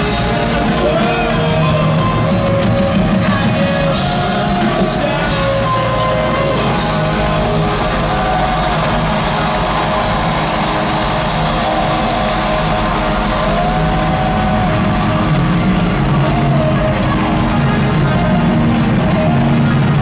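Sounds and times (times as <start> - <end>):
live rock band playing: 0.0 - 20.0.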